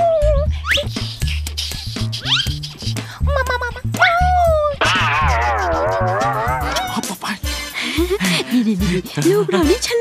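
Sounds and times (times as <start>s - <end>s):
cartoon dog meowing: 4.0s - 7.0s
bouncy music with bass beat: 4.9s - 7.1s.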